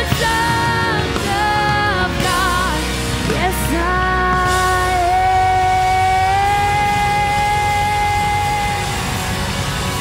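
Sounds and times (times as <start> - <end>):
keyboards and electric guitar chord: 0.0 - 10.0
woman singing long high note: 3.4 - 9.2.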